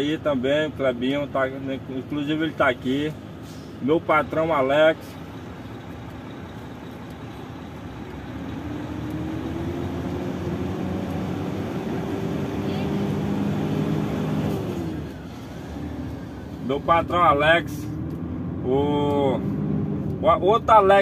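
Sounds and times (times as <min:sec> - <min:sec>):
truck diesel engine revving: 0:00.0 - 0:21.0.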